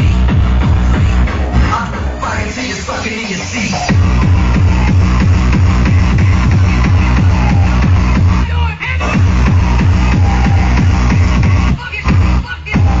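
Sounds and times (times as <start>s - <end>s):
fast kick drum: 0.0s - 2.0s, 3.9s - 8.4s, 9.2s - 13.0s
dense synths: 0.0s - 13.0s.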